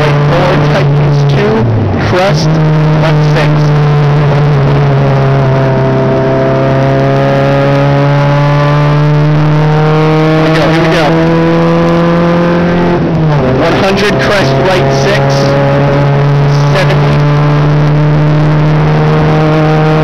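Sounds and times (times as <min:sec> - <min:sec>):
car engine pulling hard: 0:00.0 - 0:20.0.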